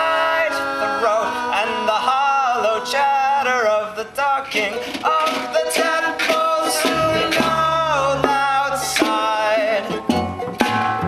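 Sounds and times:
plucked charango: 4.6s - 11.0s
double bass: 6.4s - 11.0s.

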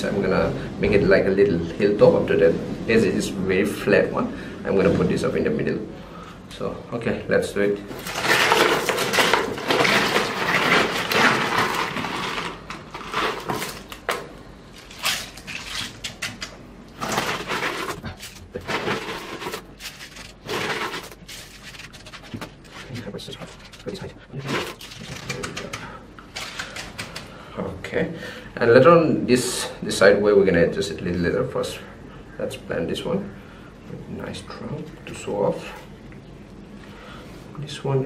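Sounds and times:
gritty soil scraping: 7.9s - 14.0s, 17.0s - 25.0s.

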